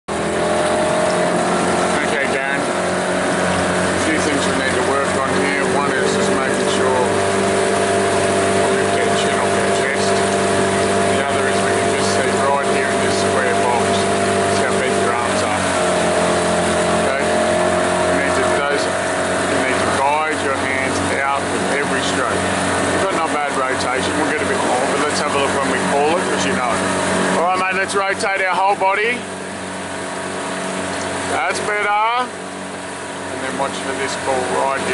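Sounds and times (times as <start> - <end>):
motorboat engine running: 0.0 - 34.9.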